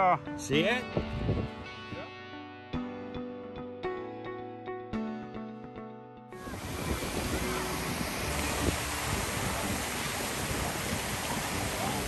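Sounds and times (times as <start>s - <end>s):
fountains splashing into pool: 6.4s - 12.0s.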